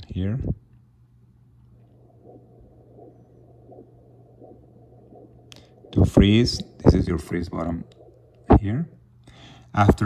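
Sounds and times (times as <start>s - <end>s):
low steady hum: 0.0s - 10.0s
doppler blood flow pulses: 1.3s - 9.1s.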